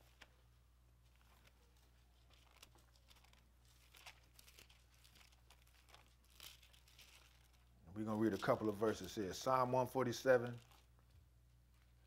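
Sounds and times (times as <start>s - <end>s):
thin pages being turned: 0.0s - 0.4s, 1.0s - 11.1s
low steady hum: 0.0s - 12.0s.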